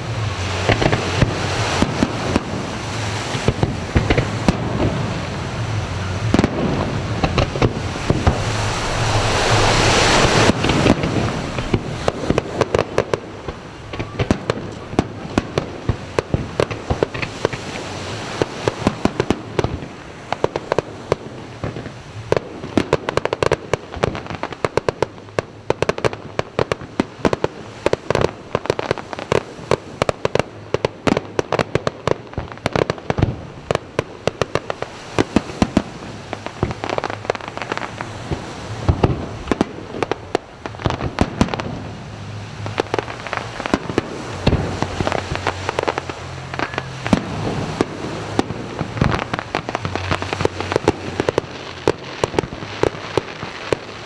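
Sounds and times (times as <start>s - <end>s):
fireworks banging: 0.0s - 54.0s
fireworks crackle: 0.0s - 54.0s.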